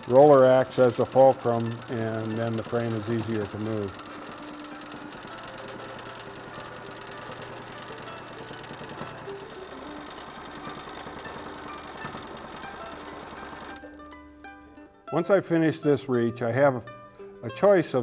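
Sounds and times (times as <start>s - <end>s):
sewing machine running: 0.0s - 14.0s
soft guitar music: 0.0s - 18.0s.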